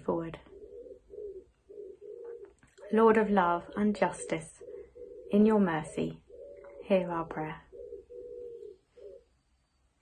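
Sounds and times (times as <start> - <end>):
pigeon cooing: 0.4 - 7.0, 7.6 - 9.3.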